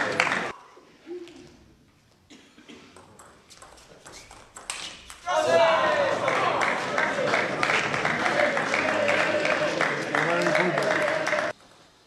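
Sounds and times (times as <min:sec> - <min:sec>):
people shouting and cheering: 0:05.2 - 0:11.6.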